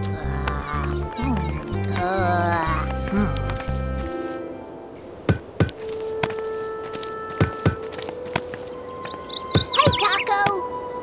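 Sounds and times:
gentle background music: 0.0s - 11.0s.

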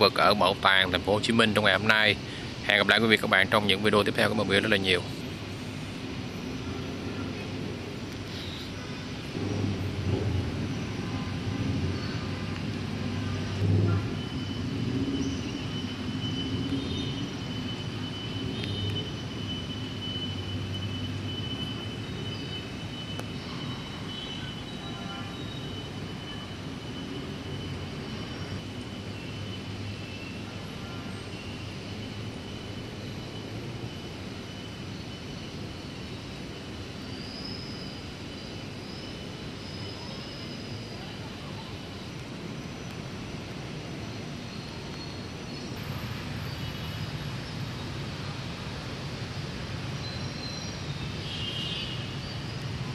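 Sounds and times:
city traffic hum: 0.0s - 52.9s.

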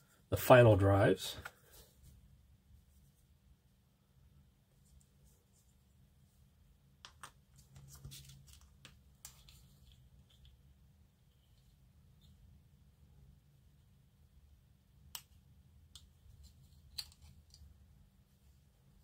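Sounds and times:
plastic parts clicking and tapping: 7.0s - 10.6s, 15.0s - 17.7s.

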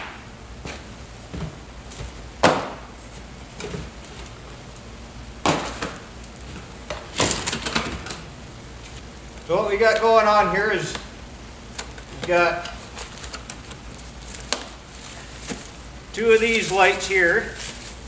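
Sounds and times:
boxes knocking on cardboard: 0.0s - 2.9s.

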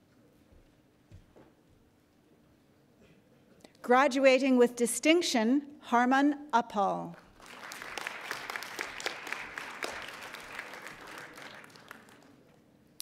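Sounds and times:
audience applauding: 7.2s - 12.6s.

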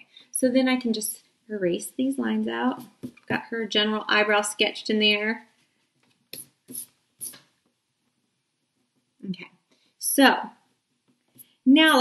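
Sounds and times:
scratchy rubbing on paper: 5.6s - 7.5s.

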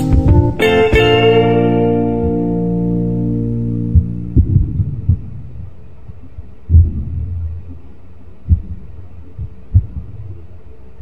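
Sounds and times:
soft low thumps: 0.0s - 2.9s, 3.7s - 10.5s
faint low hum: 0.3s - 11.0s.

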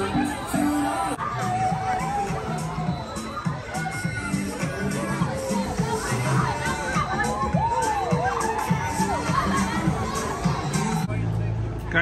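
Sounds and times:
riders screaming and shouting: 0.0s - 11.1s.

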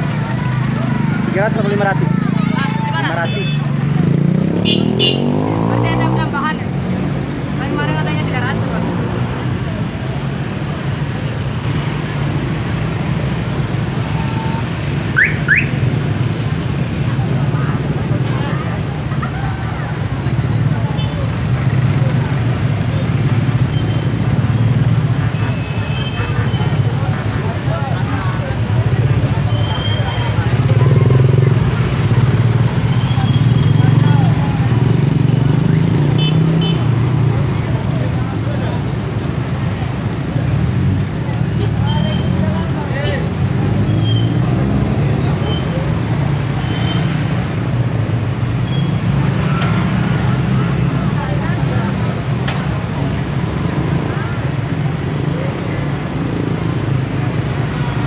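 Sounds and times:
crowd chatter: 0.0s - 15.2s, 15.8s - 58.0s
traffic engine hum: 0.0s - 58.0s.

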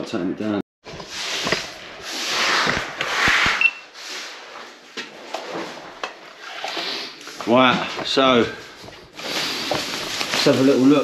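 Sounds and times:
plastic sheeting crinkling: 9.2s - 11.0s.

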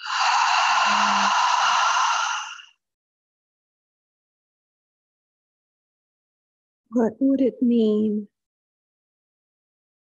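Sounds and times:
low voiced hum: 0.0s - 1.6s
person exhaling through mouth: 0.0s - 2.8s.

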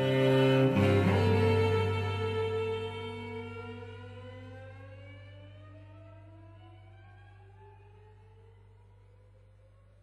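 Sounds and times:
bowed cello note gliding upward: 0.0s - 8.7s
steady low cello tone: 0.0s - 10.0s.

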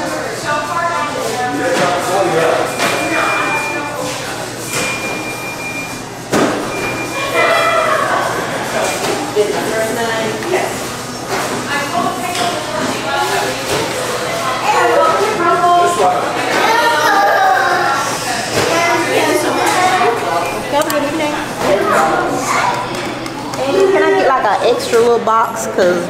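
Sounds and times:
indistinct voices talking: 0.0s - 26.0s
short high beeps: 2.6s - 4.0s, 4.7s - 6.0s, 6.7s - 7.3s.

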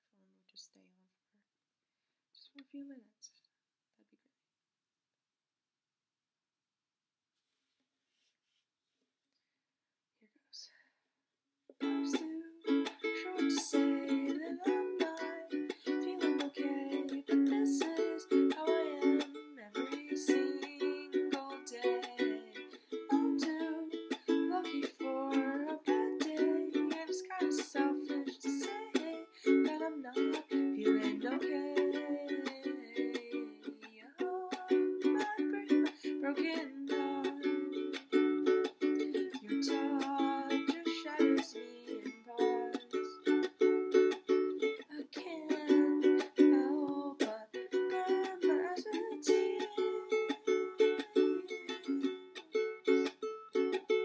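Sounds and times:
woman singing: 11.8s - 37.9s, 39.0s - 43.3s, 44.9s - 53.1s
ukulele strumming: 11.8s - 54.0s.

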